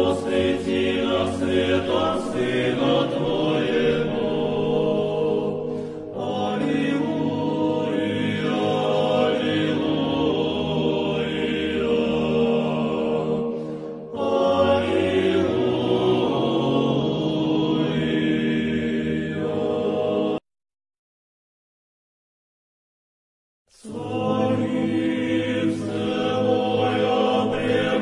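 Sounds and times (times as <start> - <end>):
slow vocal chant: 0.0 - 20.4, 23.7 - 28.0.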